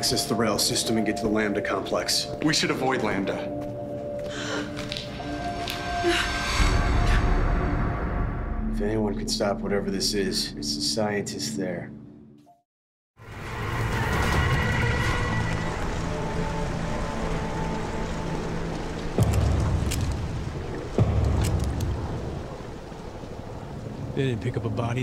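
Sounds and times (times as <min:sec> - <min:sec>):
film score music: 0:00.0 - 0:12.6, 0:13.2 - 0:25.0.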